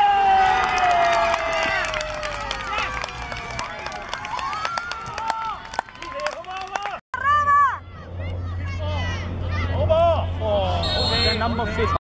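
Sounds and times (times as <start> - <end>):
people yelling: 0.0 - 3.7
scattered claps: 0.6 - 7.0.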